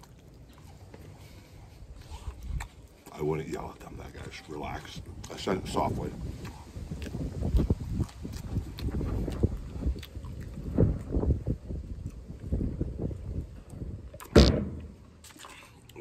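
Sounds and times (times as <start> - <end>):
chewing and mouth sounds: 0.0 - 14.3, 15.0 - 16.0
wind buffeting microphone: 1.2 - 15.2.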